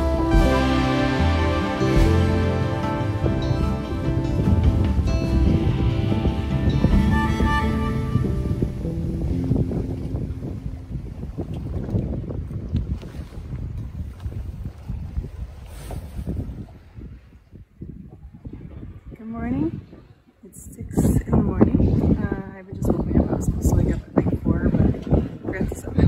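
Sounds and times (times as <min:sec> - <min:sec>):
soft instrumental music: 0:00.0 - 0:11.5
sea water washing: 0:00.0 - 0:17.2
wind buffeting microphone: 0:00.0 - 0:26.0.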